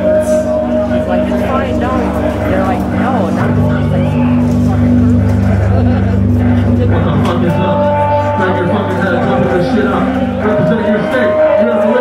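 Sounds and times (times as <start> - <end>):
distorted guitar: 0.0 - 12.0.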